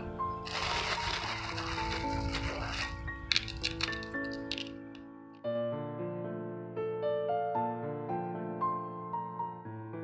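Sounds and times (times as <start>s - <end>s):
soft background music: 0.0s - 10.0s
salt crystals sprinkled onto cucumbers: 0.4s - 4.7s.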